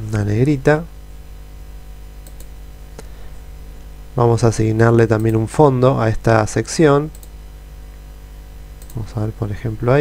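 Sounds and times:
steady low hum: 0.0 - 10.0
computer mouse clicking: 2.2 - 2.5, 7.1 - 7.4, 8.8 - 9.0.

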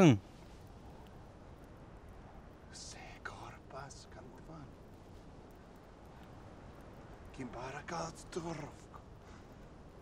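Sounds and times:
man whispering: 2.7 - 4.8.

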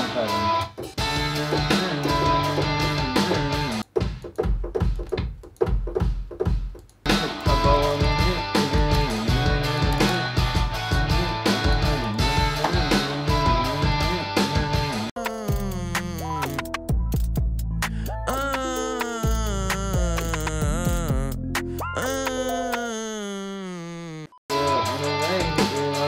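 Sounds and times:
programmed drums: 0.6 - 21.9, 24.5 - 26.0.

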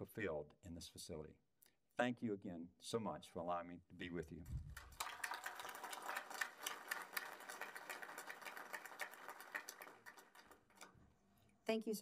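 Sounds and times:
audience applauding: 4.7 - 10.9.

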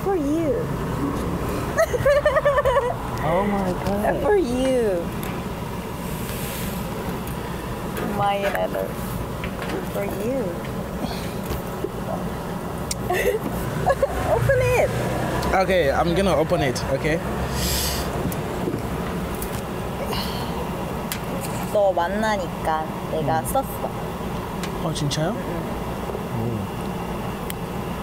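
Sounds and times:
low city rumble: 0.0 - 28.0
faint hum: 19.2 - 28.0.

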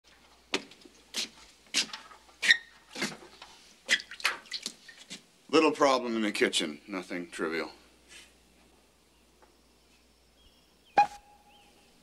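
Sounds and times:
floor squeak: 2.4 - 2.8.

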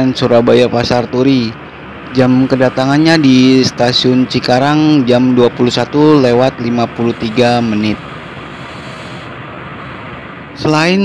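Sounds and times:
diesel locomotive idling: 0.0 - 11.0.

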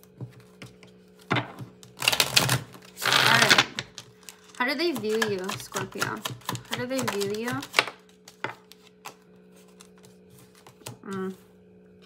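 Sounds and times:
cards being shuffled: 1.9 - 11.4.

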